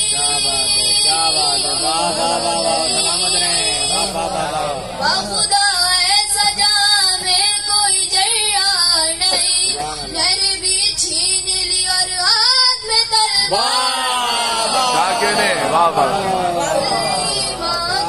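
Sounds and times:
boy singing into a microphone: 5.0 - 14.1, 16.6 - 18.0.

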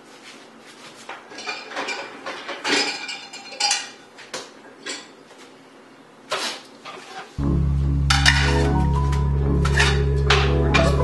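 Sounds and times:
dishes and cutlery clinking: 1.2 - 4.0, 8.1 - 8.8.

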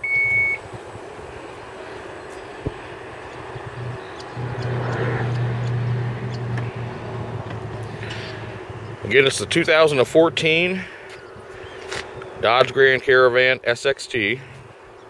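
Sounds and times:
warning beep: 0.0 - 0.6
liftgate motor humming: 3.2 - 9.1.

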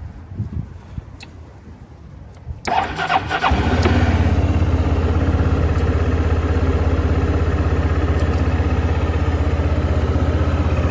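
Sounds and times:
electric starter cranking engine: 2.7 - 4.6.

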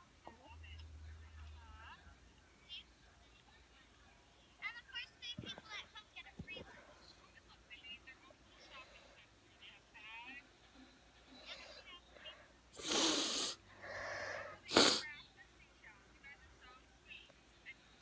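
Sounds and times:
faint speech from laptop speakers: 0.0 - 12.9
person sneezing: 12.8 - 13.6, 14.7 - 15.0
breathy intake: 12.8 - 15.0.

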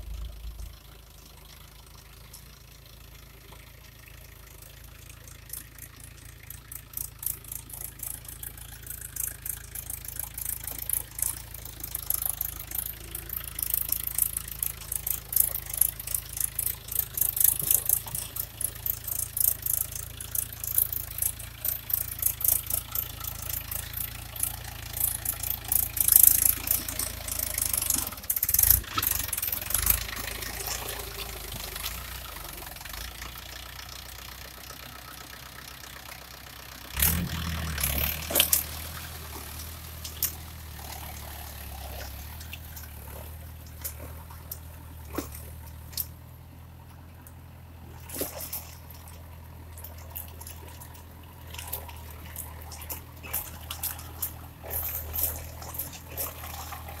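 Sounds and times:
diesel tractor engine running: 0.0 - 57.0.

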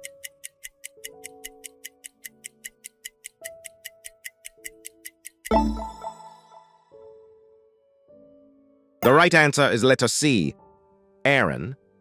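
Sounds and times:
countdown timer ticking: 0.0 - 6.9
soft background music: 0.0 - 12.0.

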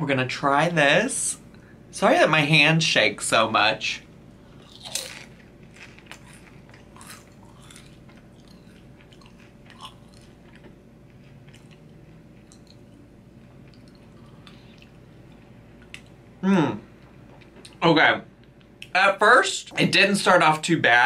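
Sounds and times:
person chewing crunchy chips: 4.4 - 16.2.

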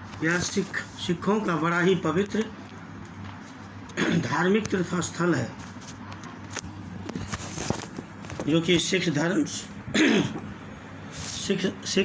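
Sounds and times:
person speaking: 0.2 - 2.6
man clearing his throat: 4.0 - 4.4, 9.9 - 10.5.

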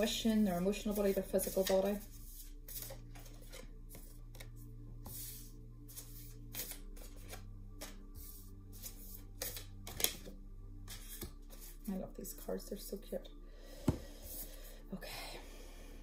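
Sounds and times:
cards shuffled by hand: 0.9 - 10.3, 10.9 - 11.8.

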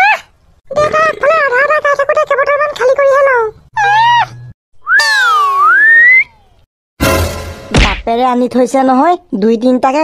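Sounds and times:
sweeping whistle-like tone: 4.8 - 6.4.

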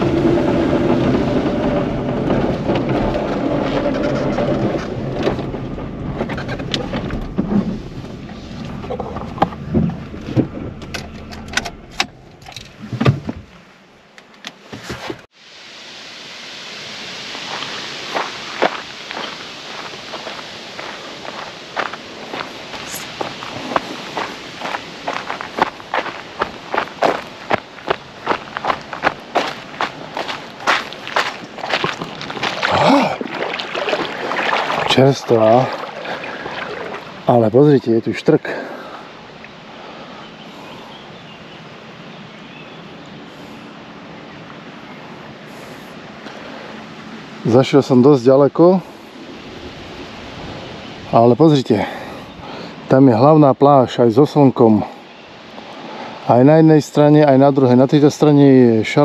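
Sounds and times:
car engine running: 0.0 - 13.0
footsteps crunching on gravel: 17.4 - 37.3
tyres crackling on stones: 17.4 - 37.9.

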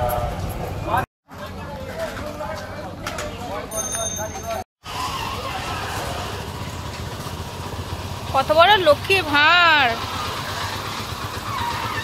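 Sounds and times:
street noise: 0.0 - 12.0
small engine idling: 4.9 - 12.0.

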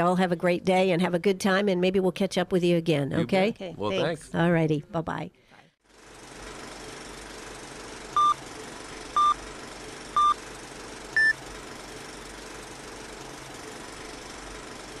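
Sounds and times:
short countdown beeps: 11.2 - 11.4.

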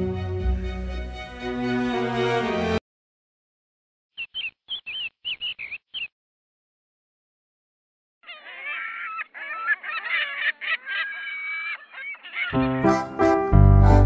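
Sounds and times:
short high bird chirps: 4.1 - 6.1
chorus of bird calls: 4.2 - 6.1, 8.2 - 12.9.

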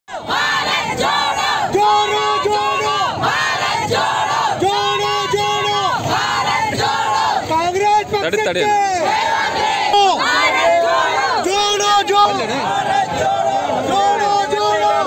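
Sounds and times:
crowd chanting slogans: 0.1 - 15.0.

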